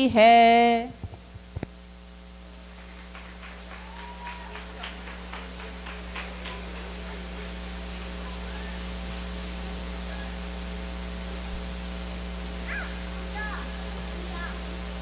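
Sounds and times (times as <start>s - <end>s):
electrical mains hum: 0.0s - 15.0s
faint high voices: 8.0s - 9.0s, 10.0s - 10.6s, 12.6s - 14.7s.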